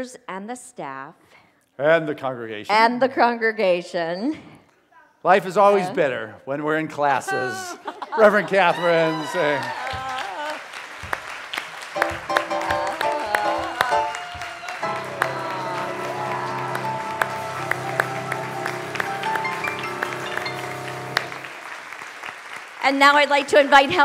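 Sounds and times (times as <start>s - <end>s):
congregation applauding: 8.2s - 24.0s
instrumental music with held chords: 14.8s - 21.5s.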